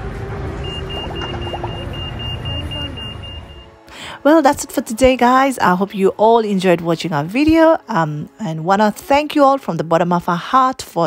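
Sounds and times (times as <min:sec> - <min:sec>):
faint voices of passers-by: 0:00.0 - 0:03.8
city traffic rumbling: 0:00.0 - 0:05.9
high electronic beeping: 0:00.6 - 0:03.8.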